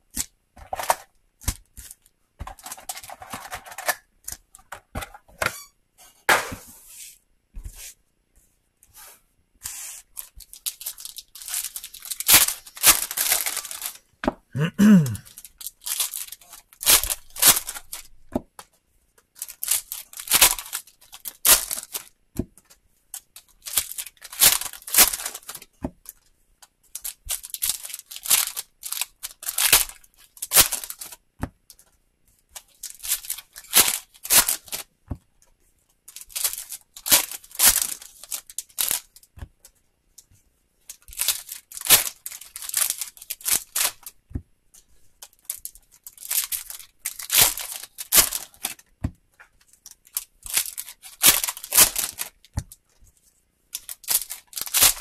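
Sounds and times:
foil wrappers tearing and crinkling: 10.1s - 14.0s, 14.9s - 18.2s, 19.4s - 22.1s, 23.2s - 25.7s, 26.9s - 31.2s, 32.6s - 34.9s, 36.1s - 39.2s, 40.9s - 44.1s, 45.3s - 48.9s, 49.8s - 52.8s, 53.8s - 55.0s.

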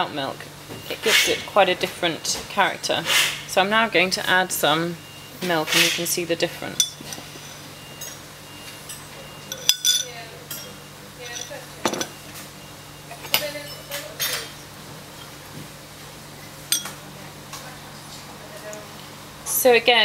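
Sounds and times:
teaspoon clinking against teacup: 8.9s - 12.1s, 16.7s - 17.0s.

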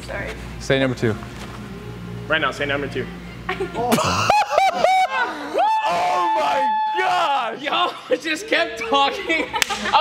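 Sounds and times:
group laughing: 3.5s - 5.6s, 7.7s - 10.0s.

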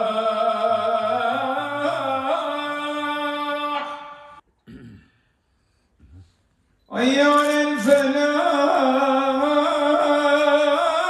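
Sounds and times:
man chanting into microphone: 0.0s - 4.4s, 6.9s - 11.0s.

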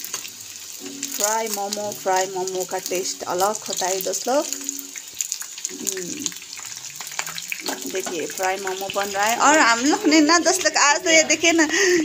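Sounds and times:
dumplings sizzling in oil: 0.0s - 12.0s.

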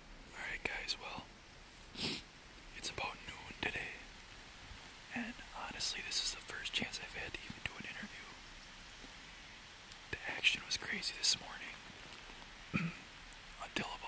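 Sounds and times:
man whispering: 0.3s - 1.3s, 2.0s - 4.1s, 5.0s - 8.4s, 10.0s - 11.9s, 13.6s - 14.0s.

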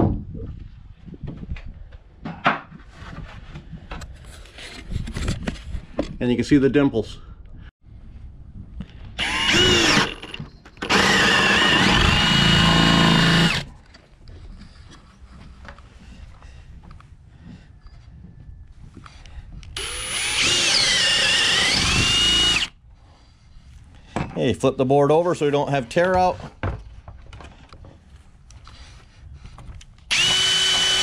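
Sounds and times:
power drill boring into wood: 9.2s - 13.7s, 19.8s - 22.8s, 30.1s - 31.0s.

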